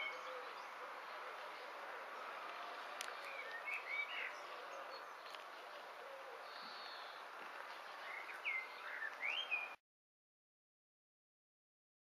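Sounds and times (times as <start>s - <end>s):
outdoor background hiss: 0.0s - 9.8s.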